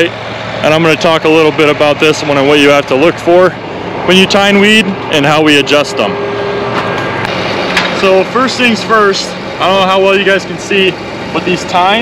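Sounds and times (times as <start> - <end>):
tractor diesel engine running: 0.0 - 12.0.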